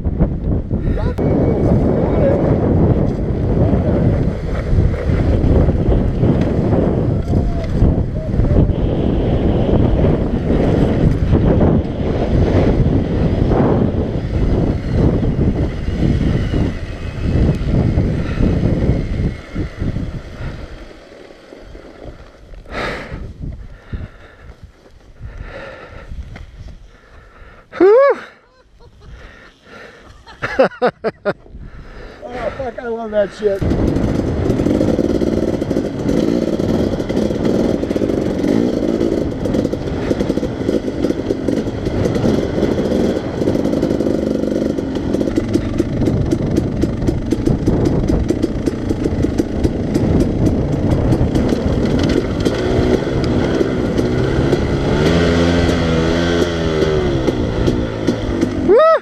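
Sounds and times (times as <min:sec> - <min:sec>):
wind buffeting microphone: 0:00.0 - 0:21.0, 0:21.6 - 0:27.8, 0:28.5 - 0:58.8
dirt bike engine rumble: 0:00.0 - 0:59.0.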